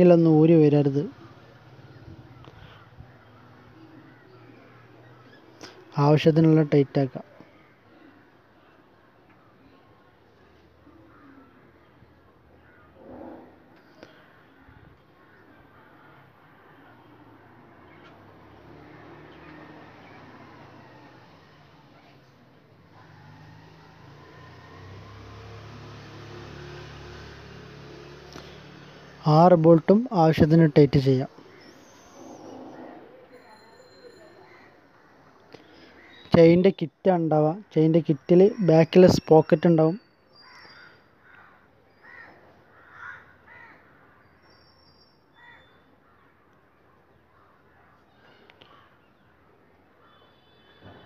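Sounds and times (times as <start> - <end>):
faint crows cawing: 1.0 - 6.6, 7.2 - 21.5, 30.1 - 33.4, 34.2 - 36.5, 40.0 - 51.0.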